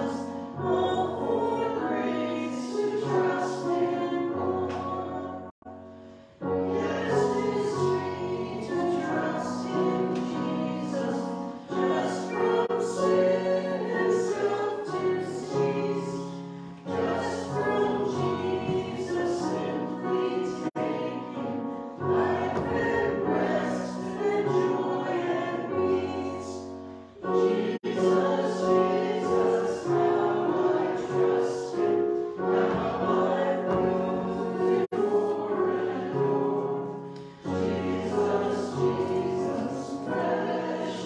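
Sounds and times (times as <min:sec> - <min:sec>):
group singing a hymn: 0:00.0 - 0:05.6, 0:06.4 - 0:41.0
sustained accompaniment: 0:00.6 - 0:41.0.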